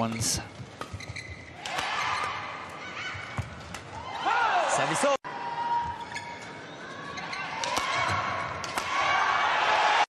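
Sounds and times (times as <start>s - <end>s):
shoes squeaking on court floor: 0.0s - 2.4s, 5.8s - 7.5s
rackets hitting shuttlecock: 1.6s - 2.3s, 7.6s - 9.0s.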